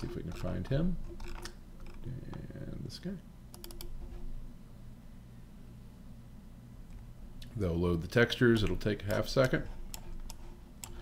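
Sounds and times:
faint low hum: 0.0 - 11.0
computer mouse clicks: 3.5 - 4.0, 8.6 - 11.0.

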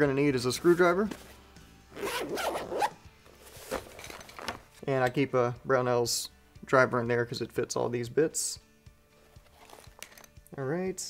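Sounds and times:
zipper pulled open: 1.1 - 4.6, 9.4 - 10.3
fabric rubbing: 2.0 - 4.6.

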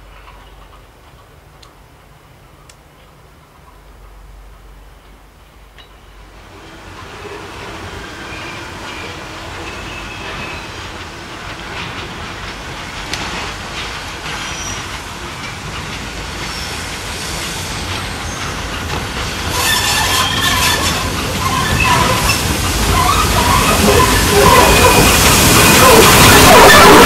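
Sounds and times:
steam locomotive rumbling: 0.0 - 27.0
wheels squealing on rails: 6.4 - 27.0.

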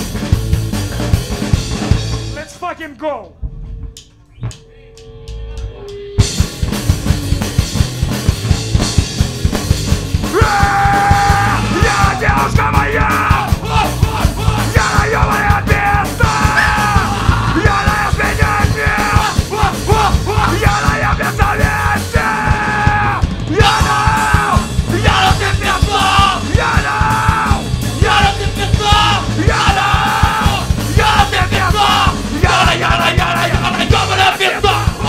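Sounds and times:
fast drumming: 0.0 - 2.5, 6.2 - 35.0
punk band playing live: 0.0 - 2.5, 5.5 - 35.0
bass guitar: 0.0 - 35.0
singer yelling: 10.2 - 35.0.

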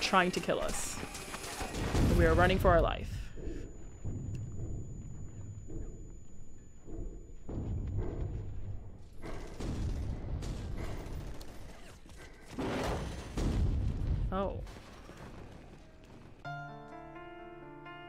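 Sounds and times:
low rumble with booms: 1.8 - 11.3, 13.4 - 14.7.

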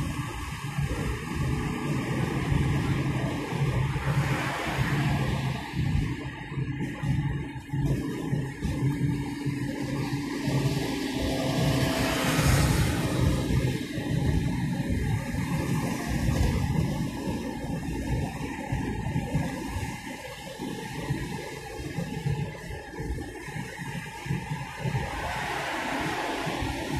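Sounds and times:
background music: 0.0 - 17.9
road and wind noise from car: 0.0 - 26.9.

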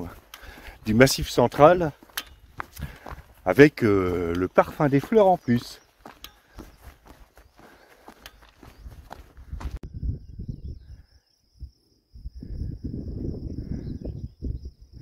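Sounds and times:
footsteps on dirt trail: 0.0 - 9.8
wind rumble on microphone: 0.8 - 3.5, 8.6 - 15.0.

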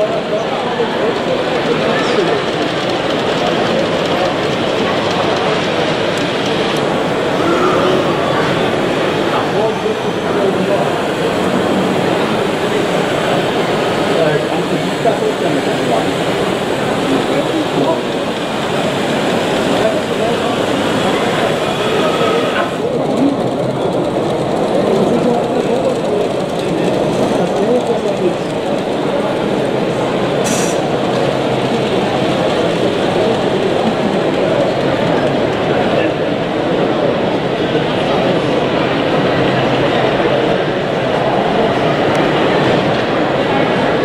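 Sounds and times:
babble of crowd: 0.0 - 44.0
model train running on track: 0.0 - 44.0.

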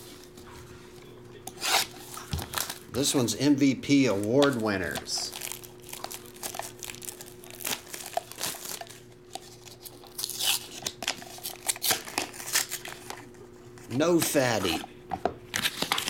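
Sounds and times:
faint steady hum: 0.0 - 16.0
plastic wrap tearing and crinkling: 1.6 - 3.0, 4.2 - 13.3.

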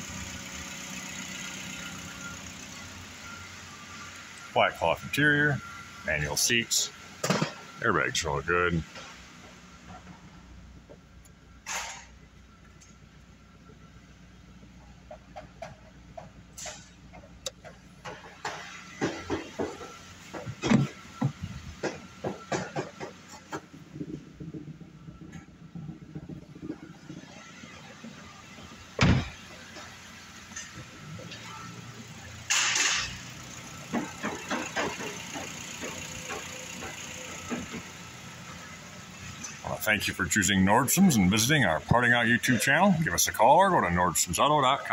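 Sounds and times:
car engine idling: 0.0 - 44.9.

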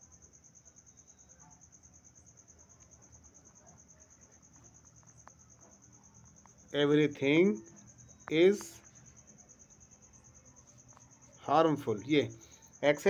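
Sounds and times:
faint high-pitched pulsing whine: 0.0 - 13.0.

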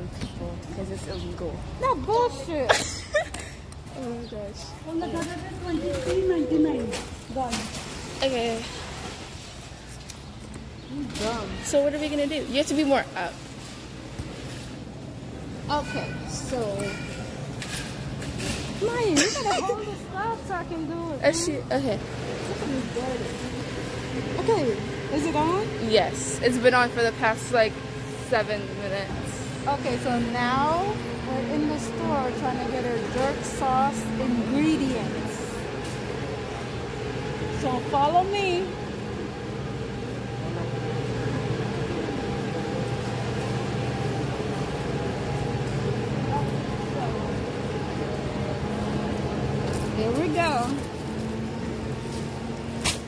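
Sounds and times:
refrigeration mechanical hum: 0.0 - 53.0
woman's voice: 3.9 - 8.8, 11.1 - 13.4, 15.7 - 17.1, 18.8 - 23.3, 24.3 - 35.7, 37.5 - 38.8, 49.8 - 50.8.

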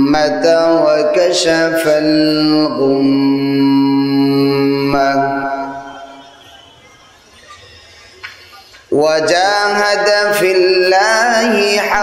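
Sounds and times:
man chanting amplified: 0.0 - 6.8, 8.6 - 12.0.

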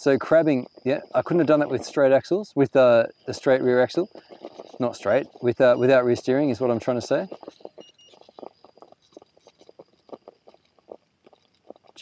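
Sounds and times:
rc car crunching over rock: 0.0 - 12.0.

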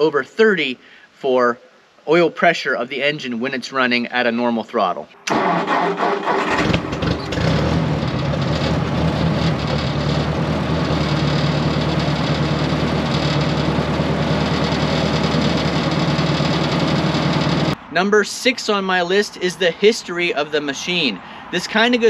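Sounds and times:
tractor engine running: 5.3 - 17.8.

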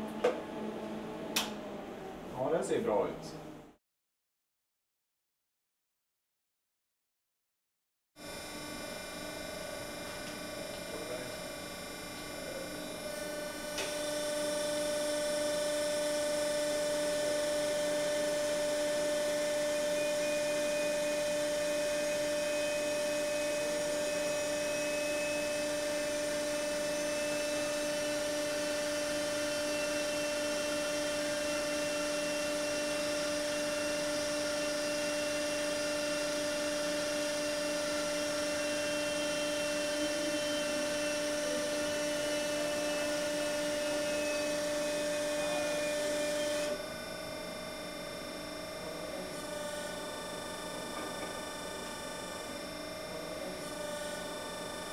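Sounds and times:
press machine humming: 8.7 - 54.9.

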